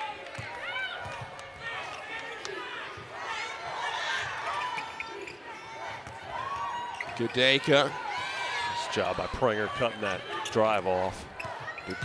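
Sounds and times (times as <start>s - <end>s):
sneakers squeaking: 4.2s - 6.2s, 6.8s - 7.6s, 11.2s - 12.0s.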